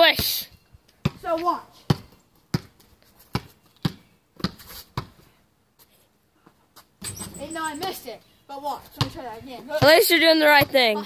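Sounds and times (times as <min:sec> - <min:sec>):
basketball bouncing on concrete: 0:01.0 - 0:05.2, 0:07.0 - 0:08.0, 0:08.8 - 0:11.0.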